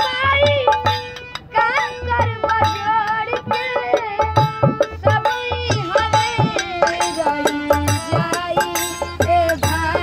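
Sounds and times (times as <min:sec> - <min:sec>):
boy singing: 0:00.0 - 0:10.0
hand drum beating: 0:00.0 - 0:10.0
harmonium held notes: 0:00.0 - 0:10.0.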